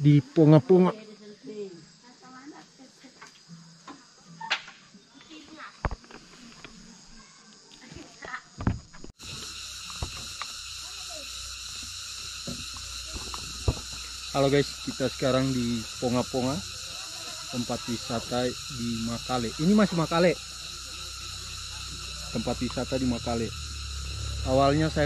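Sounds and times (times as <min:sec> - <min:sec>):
insects chirring: 0:00.0 - 0:25.0.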